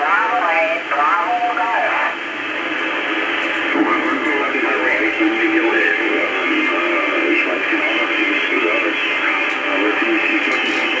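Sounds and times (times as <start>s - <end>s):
faint radio hiss: 0.0s - 11.0s
tinny radio voice: 3.6s - 11.0s.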